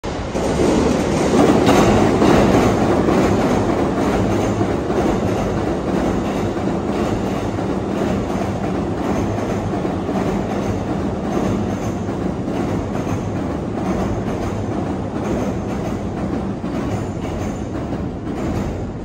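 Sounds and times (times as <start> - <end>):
train wheels rumbling on rail: 0.0 - 19.0.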